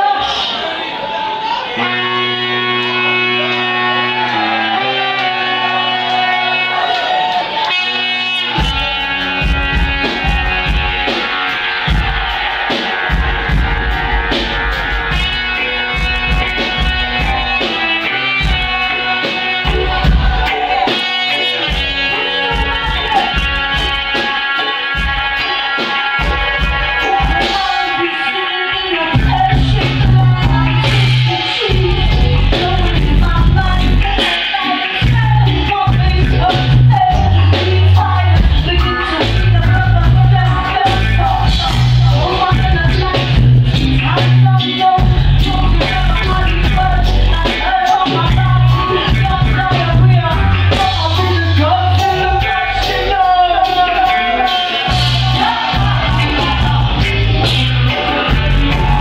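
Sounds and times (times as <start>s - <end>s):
guitar: 0.0s - 59.0s
live reggae band: 0.0s - 59.0s
bass guitar: 1.2s - 59.0s
drum kit: 2.0s - 59.0s.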